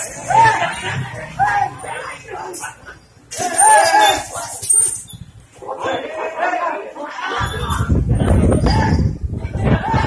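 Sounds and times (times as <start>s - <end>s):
men shouting: 0.0s - 4.6s, 8.6s - 10.0s.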